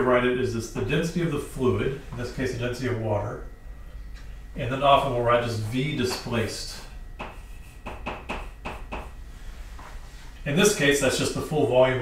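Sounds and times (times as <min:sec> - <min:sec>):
chalk writing on blackboard: 0:06.8 - 0:10.0.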